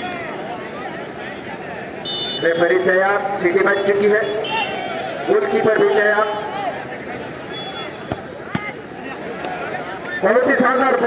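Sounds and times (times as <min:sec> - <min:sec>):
crowd murmuring: 0:04.4 - 0:10.5
football being kicked: 0:08.0 - 0:08.8.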